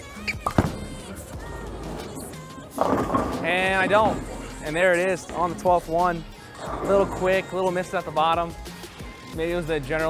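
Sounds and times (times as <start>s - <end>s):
background music: 0.0s - 10.0s
bowling ball rolling: 0.3s - 8.2s
bowling ball thud on wooden lane: 0.4s - 1.0s, 1.8s - 4.6s.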